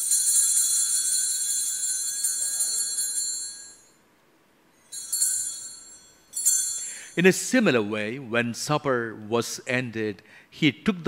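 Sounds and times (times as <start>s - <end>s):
small altar bells ringing: 0.0s - 8.1s.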